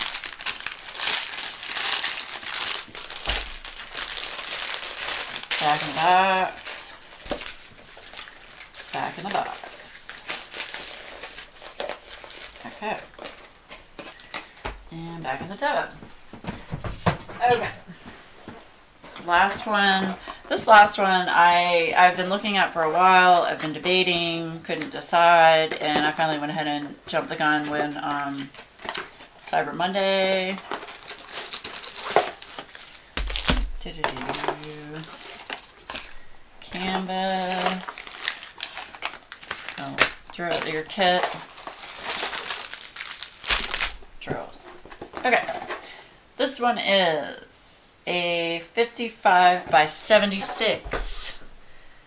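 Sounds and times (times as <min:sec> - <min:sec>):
packaging rustling: 0:00.0 - 0:14.9, 0:27.5 - 0:45.8.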